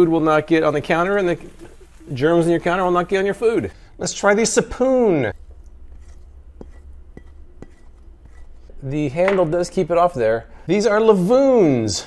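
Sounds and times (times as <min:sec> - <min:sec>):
man speaking: 0:00.0 - 0:05.4, 0:08.8 - 0:12.0
low steady hum: 0:00.0 - 0:11.8
silicone spoon scraping plate: 0:05.3 - 0:08.8.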